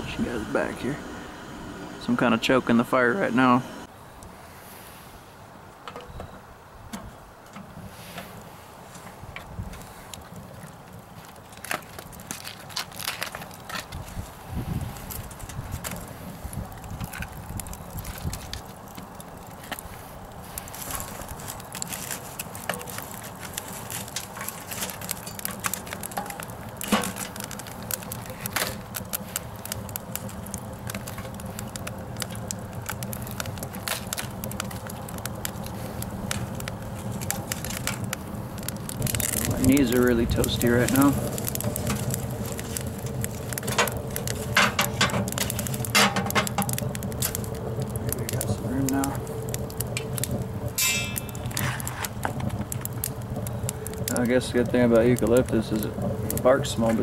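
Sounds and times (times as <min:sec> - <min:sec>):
wood fire crackling and popping: 0:00.0 - 0:04.4, 0:05.7 - 0:57.0
low steady rush: 0:00.0 - 0:05.4.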